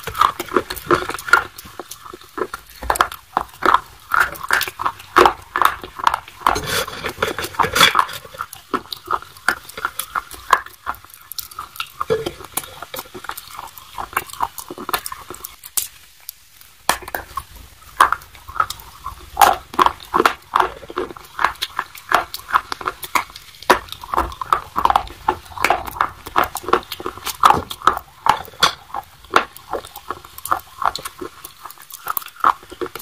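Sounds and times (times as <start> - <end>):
wet mouth sounds: 0.0 - 16.1, 16.9 - 33.0
crunchy chewing: 0.0 - 33.0.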